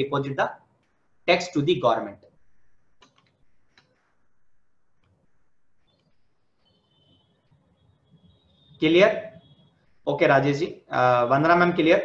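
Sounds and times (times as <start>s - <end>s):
faint clicks: 3.0s - 4.0s.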